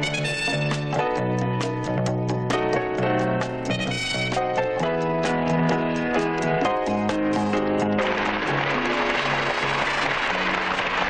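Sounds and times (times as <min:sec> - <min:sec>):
audience applauding: 0:07.4 - 0:11.0.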